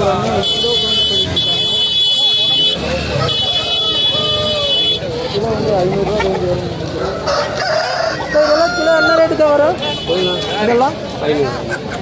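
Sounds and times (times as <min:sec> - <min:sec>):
people talking: 0:00.0 - 0:07.3, 0:08.2 - 0:12.0
roosters calling: 0:02.6 - 0:10.8.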